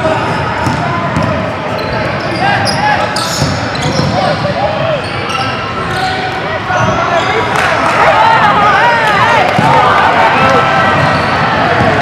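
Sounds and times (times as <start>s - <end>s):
sneakers squeaking: 0.0s - 7.6s, 10.8s - 12.0s
basketball bouncing on wooden court: 0.6s - 1.4s, 3.3s - 4.2s.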